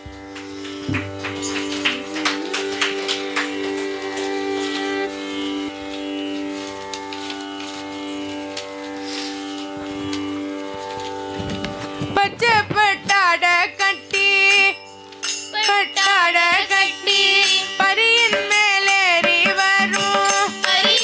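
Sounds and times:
percussion strokes: 0:00.0 - 0:21.0
violin sliding upward: 0:00.2 - 0:13.2.

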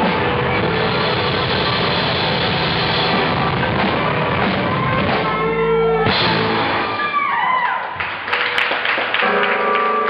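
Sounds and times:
live rock band playing: 0:00.0 - 0:07.2, 0:09.2 - 0:10.0.

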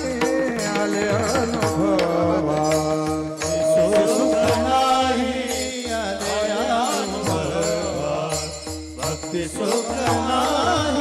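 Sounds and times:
drum: 0:00.0 - 0:11.0
men chanting in unison: 0:01.6 - 0:11.0
small hand cymbals: 0:02.6 - 0:10.8.

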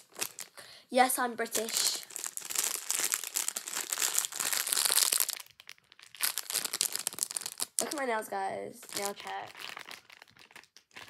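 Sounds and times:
plastic packaging crinkling: 0:00.0 - 0:00.6, 0:01.5 - 0:08.2, 0:08.8 - 0:11.0.

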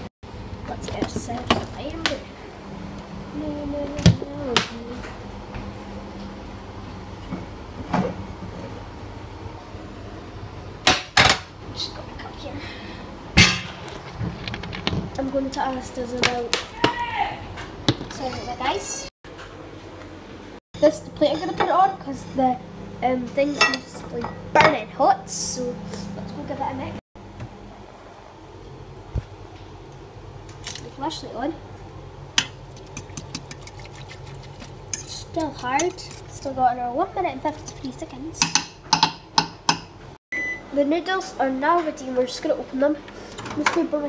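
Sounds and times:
kitchen items knocking and clattering: 0:10.8 - 0:11.5, 0:13.4 - 0:15.2, 0:32.4 - 0:36.5
steady low hum: 0:17.6 - 0:44.0.

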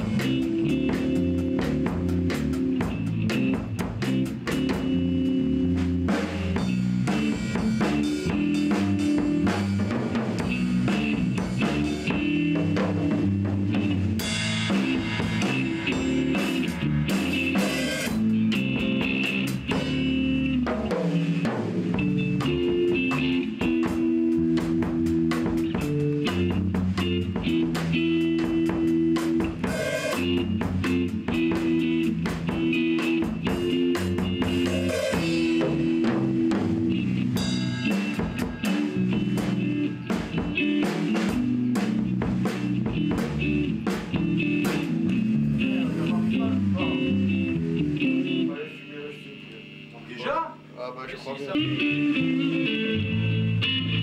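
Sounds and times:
electric bass: 0:00.0 - 0:50.8, 0:51.5 - 0:54.0
drum kit beat: 0:00.0 - 0:54.0
electric guitar: 0:00.0 - 0:54.0.

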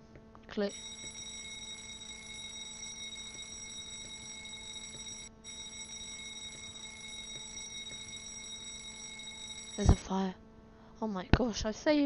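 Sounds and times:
fire alarm ringing: 0:00.7 - 0:10.1.

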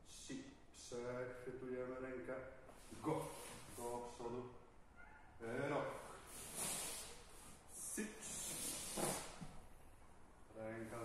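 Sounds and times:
uniforms rustling and swishing: 0:06.3 - 0:09.6
bare feet brushing mats: 0:08.2 - 0:09.6.

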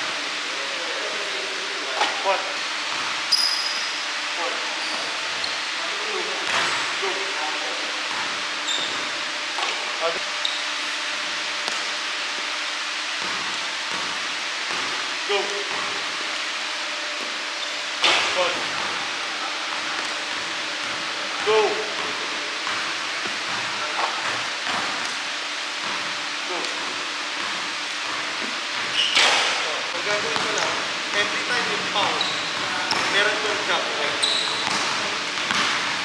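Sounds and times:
gym ambience hiss: 0:00.0 - 0:36.0
sneakers squeaking on hardwood: 0:02.9 - 0:04.1, 0:04.7 - 0:05.8, 0:08.0 - 0:11.9, 0:17.0 - 0:25.0, 0:27.3 - 0:29.6, 0:30.2 - 0:36.0
basketball bouncing: 0:08.1 - 0:09.8, 0:13.2 - 0:15.0, 0:19.7 - 0:25.2, 0:25.8 - 0:26.1, 0:27.4 - 0:29.5, 0:30.1 - 0:31.4, 0:32.0 - 0:33.3, 0:34.3 - 0:36.0.

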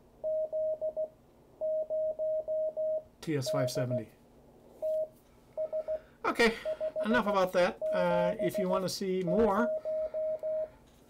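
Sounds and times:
morse code tone: 0:00.2 - 0:04.1, 0:04.8 - 0:10.8.

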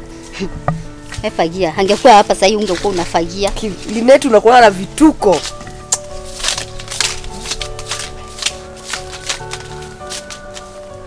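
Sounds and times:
background music with held tones: 0:00.0 - 0:11.0
hand broom sweeping: 0:00.0 - 0:11.0.

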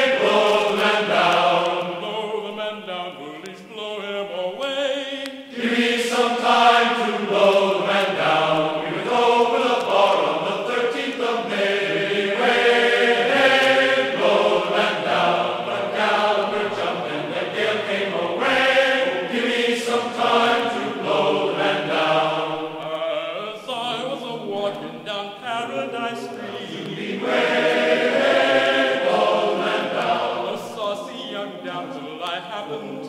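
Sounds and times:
choir singing held notes: 0:00.0 - 0:33.0.

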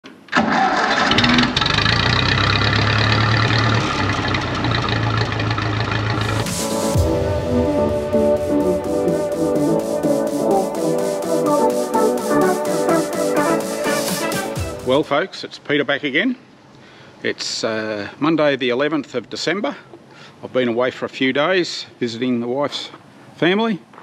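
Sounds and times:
tractor engine running: 0:01.1 - 0:06.6
intro music with steady beat: 0:06.2 - 0:15.1.

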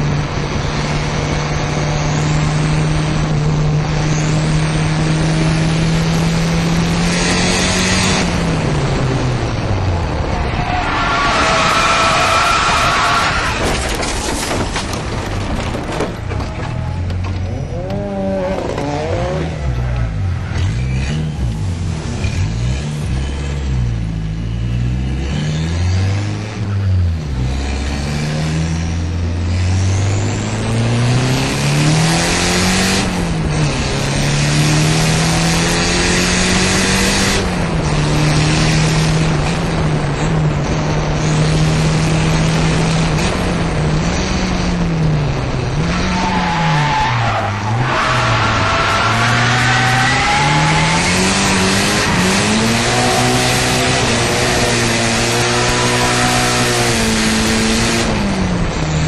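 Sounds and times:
car engine revving: 0:00.0 - 0:59.0.

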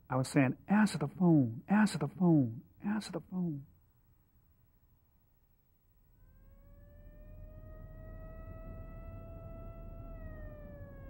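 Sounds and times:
emergency vehicle siren wailing: 0:06.3 - 0:11.0.

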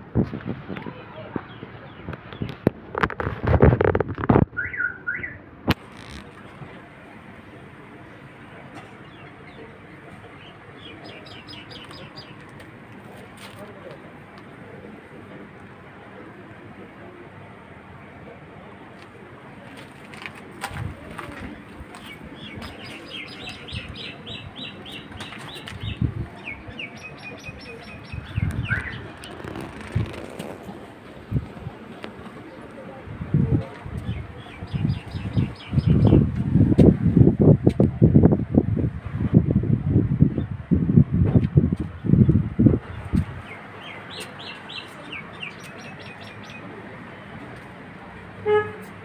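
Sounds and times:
bird chirping: 0:10.4 - 0:12.4, 0:22.0 - 0:30.0.

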